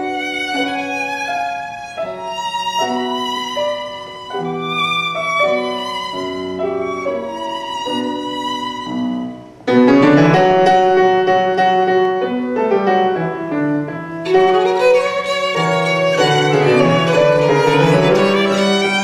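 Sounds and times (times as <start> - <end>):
grand piano: 0.0 - 19.0
violin: 0.0 - 19.0.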